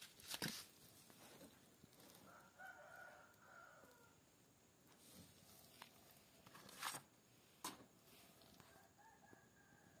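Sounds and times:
rooster crowing: 0:02.2 - 0:04.2, 0:08.6 - 0:10.0.

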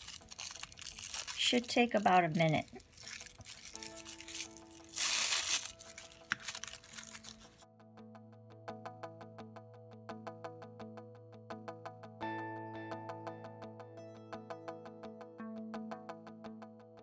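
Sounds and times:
plastic bag crinkling: 0:00.0 - 0:07.6.

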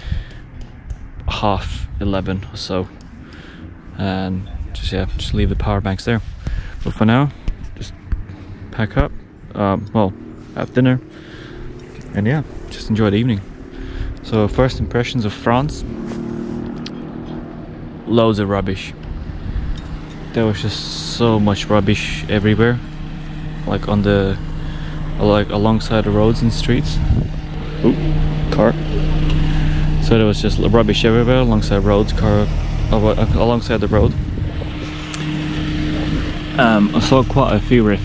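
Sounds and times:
engine running steadily: 0:00.0 - 0:38.0.

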